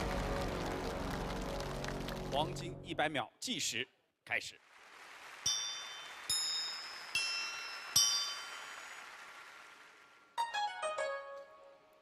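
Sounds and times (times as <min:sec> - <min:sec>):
hammer striking steel chimes: 0:05.5 - 0:08.8.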